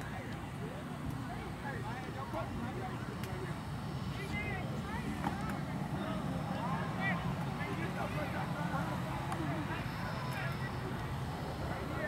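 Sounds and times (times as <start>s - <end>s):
people talking and calling out: 0.0s - 12.0s
steady low hum: 0.0s - 12.0s.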